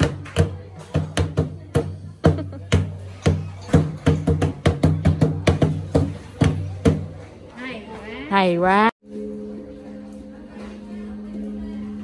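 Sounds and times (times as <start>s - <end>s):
wooden log drum strikes: 0.0s - 7.2s.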